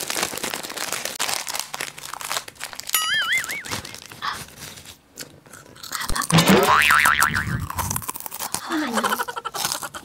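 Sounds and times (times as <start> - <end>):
crunching clicks of snack eating: 3.6 - 6.4, 7.6 - 10.0
cartoon boing with wobbling pitch: 6.3 - 7.8.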